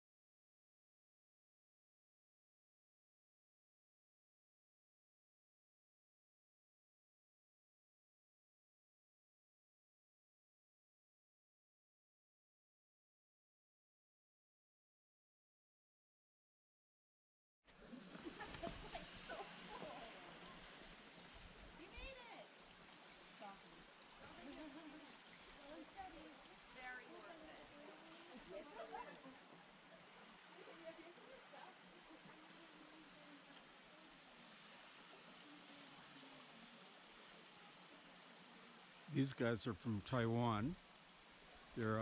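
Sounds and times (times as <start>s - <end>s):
thin waterfall hiss: 17.7s - 42.0s.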